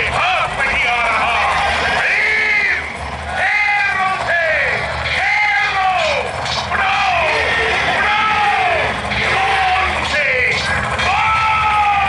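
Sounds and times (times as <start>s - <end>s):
battle cries: 1.3s - 10.4s.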